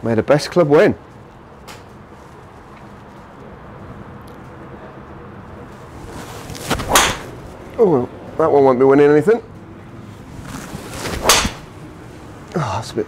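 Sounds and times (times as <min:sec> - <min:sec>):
golf club swing swish: 0:06.0 - 0:07.4, 0:10.4 - 0:11.8
golf club striking ball: 0:06.8 - 0:07.4, 0:11.2 - 0:11.7.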